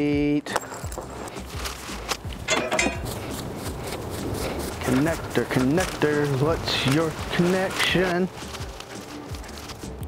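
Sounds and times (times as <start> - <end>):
cables rustling and knocking: 0.6 - 4.0
footsteps on grass: 1.0 - 10.0.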